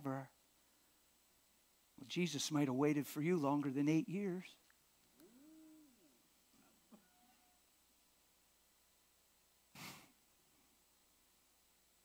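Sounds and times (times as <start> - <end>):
faint distant hummed voice: 5.2 - 7.8.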